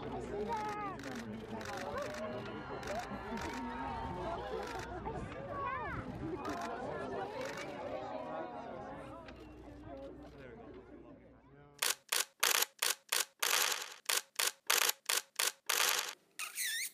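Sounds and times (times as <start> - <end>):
crowd voices: 0.0 - 12.2
camera shutter clicks: 11.8 - 16.2.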